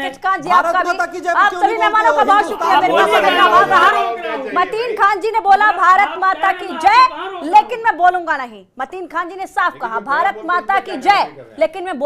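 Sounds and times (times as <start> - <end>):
voices talking over one another: 0.0 - 8.4.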